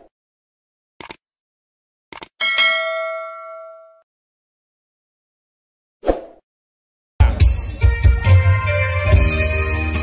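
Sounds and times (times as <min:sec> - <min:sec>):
bright bell ding: 0:02.4 - 0:04.0.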